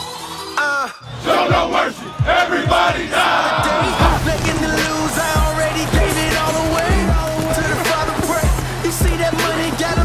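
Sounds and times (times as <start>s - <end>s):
men shouting together: 1.2s - 8.6s
deep bass beats: 1.5s - 10.0s.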